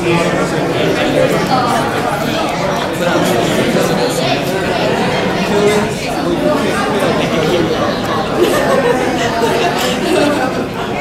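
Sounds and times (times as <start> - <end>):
babble of overlapping conversations: 0.0 - 11.0.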